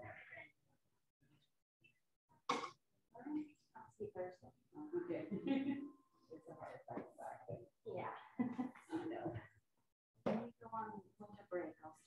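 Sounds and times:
indistinct talk in a room: 0:00.0 - 0:12.0.

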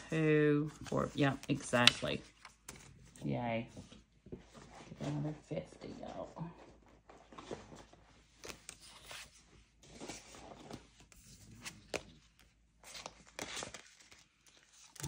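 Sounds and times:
paper rustling: 0:00.6 - 0:15.0.

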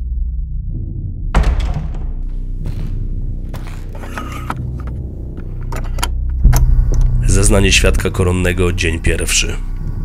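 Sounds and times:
deep hit: 0:00.0 - 0:03.4.

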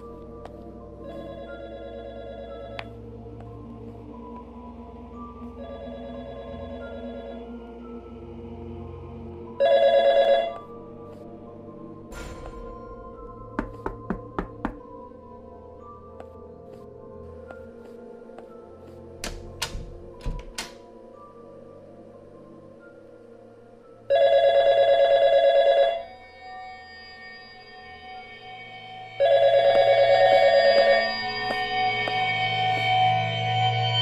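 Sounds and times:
electronic telephone ring: 0:24.1 - 0:26.0, 0:29.2 - 0:30.9
low music drone: 0:26.1 - 0:34.0.

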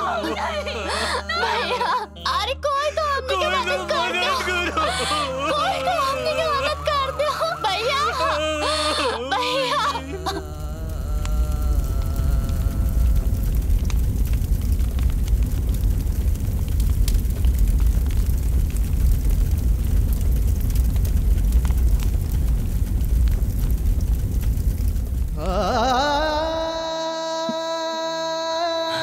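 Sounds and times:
person singing: 0:00.0 - 0:13.7, 0:25.4 - 0:29.0
fire burning with low rumble: 0:00.0 - 0:27.0
fire crackles and pops: 0:00.0 - 0:27.2.

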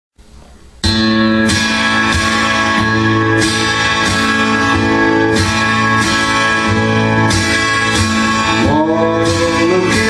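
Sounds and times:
acoustic guitar strumming: 0:00.6 - 0:10.0.

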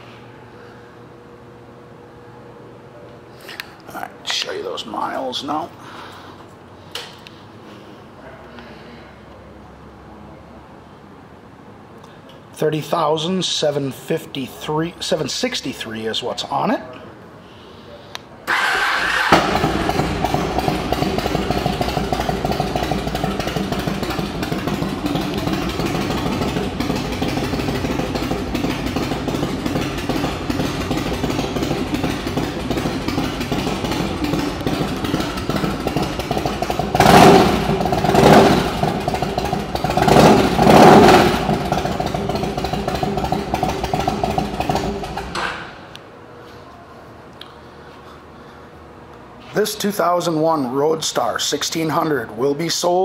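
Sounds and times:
engine throttle blips: 0:18.5 - 0:46.0
motorcycle engine idling: 0:18.6 - 0:45.4.

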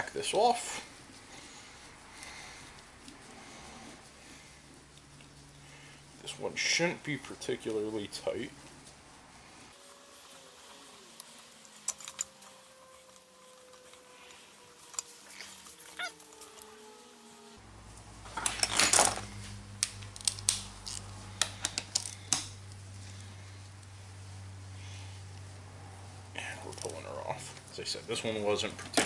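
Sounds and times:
rustle of handling: 0:00.0 - 0:18.6, 0:19.2 - 0:28.8
metal clicks and clinks: 0:11.2 - 0:16.7.

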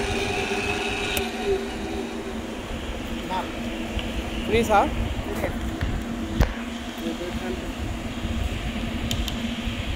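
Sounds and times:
lathe humming: 0:00.0 - 0:09.7.

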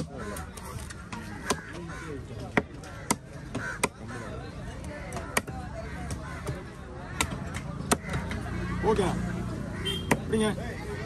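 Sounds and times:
babble of voices: 0:00.0 - 0:11.0
cleaver chopping on wooden block: 0:02.5 - 0:04.0, 0:05.1 - 0:08.4, 0:10.1 - 0:10.3.

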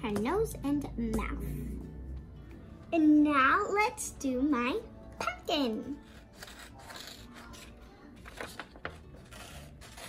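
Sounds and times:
paper rustling and scraping: 0:06.0 - 0:10.0.

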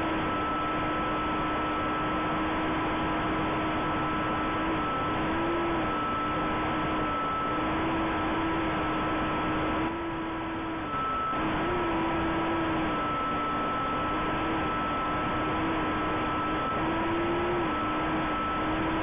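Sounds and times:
drone motors buzzing: 0:00.0 - 0:19.0.

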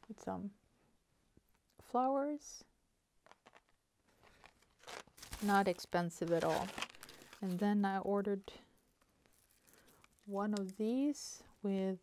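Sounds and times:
cardboard card clicks and rustles: 0:03.2 - 0:07.8.

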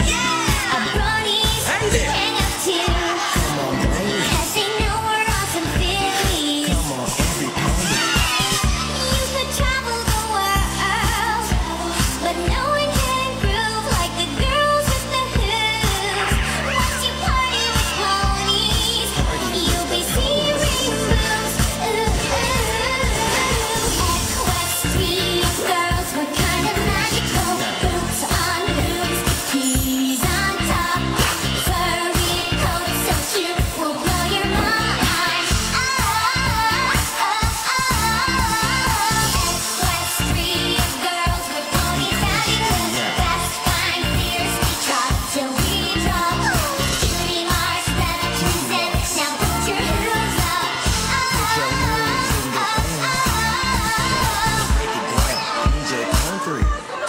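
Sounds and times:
dance beat: 0:00.0 - 0:57.0
pop song with singing: 0:00.0 - 0:57.0.

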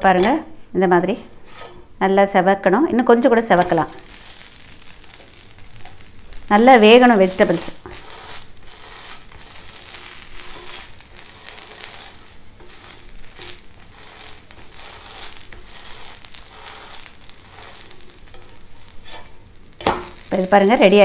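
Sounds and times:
spatula scraping a pan: 0:01.2 - 0:01.9, 0:03.5 - 0:21.0
sandwich sizzling on a pan: 0:03.5 - 0:21.0.

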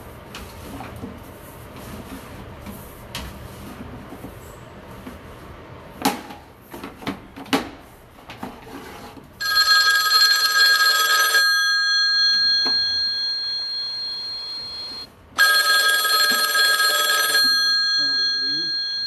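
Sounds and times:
telephone ringing: 0:09.4 - 0:19.0.

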